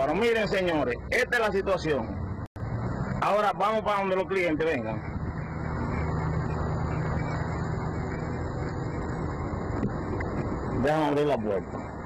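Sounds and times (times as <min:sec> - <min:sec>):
car engine running: 0:03.7 - 0:12.0.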